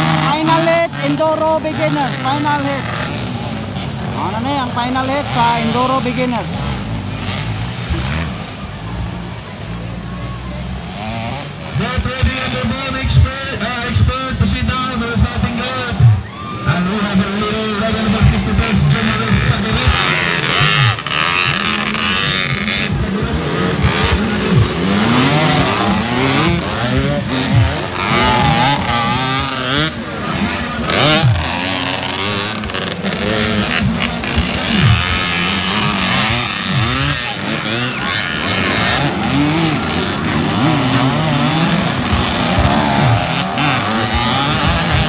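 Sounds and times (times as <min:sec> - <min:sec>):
dirt bike engines: 0:00.0 - 0:45.0.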